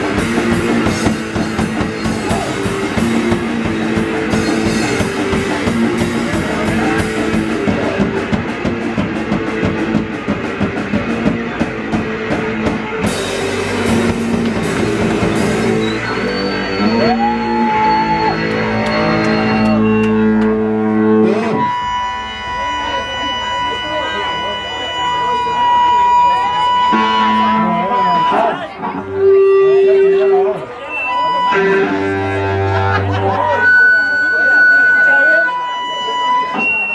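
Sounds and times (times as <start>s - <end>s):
fast drums: 0.0s - 20.8s
punk band playing loud: 0.0s - 36.9s
ringing guitar tones: 0.0s - 36.9s.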